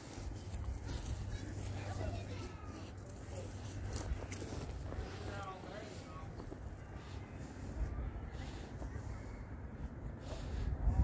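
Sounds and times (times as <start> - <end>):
faint distant voices: 0.0 - 11.0
steady low rumble: 0.0 - 11.0.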